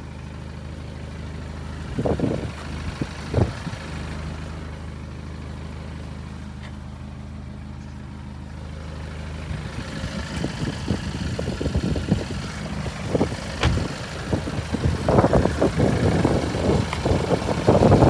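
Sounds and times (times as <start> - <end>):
diesel engine idling: 0.0 - 18.0.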